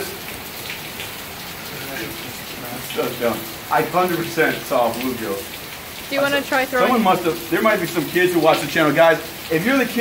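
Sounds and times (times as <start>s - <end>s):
steady rain falling: 0.0s - 10.0s.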